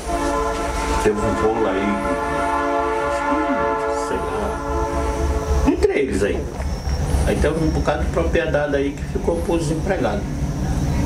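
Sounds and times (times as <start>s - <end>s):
train horn blast: 0.0s - 6.4s.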